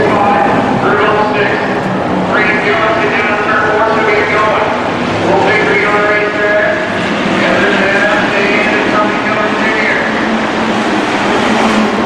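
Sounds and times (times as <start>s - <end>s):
race car engines: 0.0s - 12.0s.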